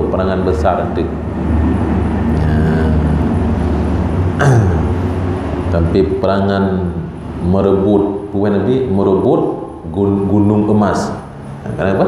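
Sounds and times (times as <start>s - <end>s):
faint engine-like drone: 0.0s - 12.0s.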